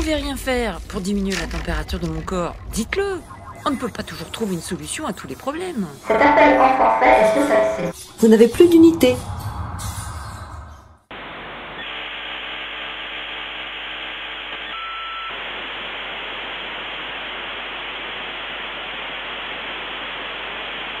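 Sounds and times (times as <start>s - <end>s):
telephone line static hiss: 11.1s - 21.0s.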